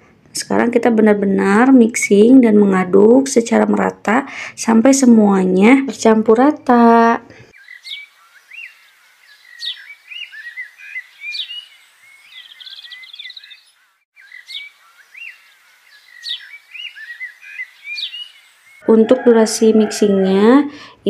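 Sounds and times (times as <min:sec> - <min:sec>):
small birds chirping: 0:05.6 - 0:18.9.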